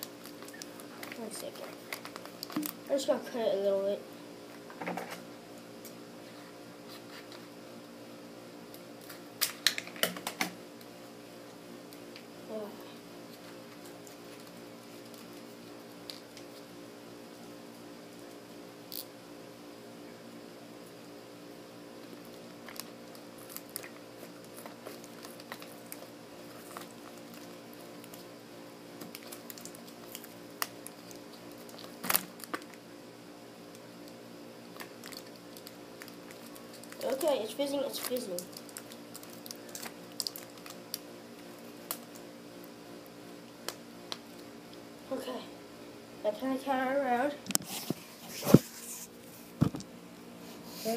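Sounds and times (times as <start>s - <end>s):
quiet steady hum: 0.0s - 50.9s.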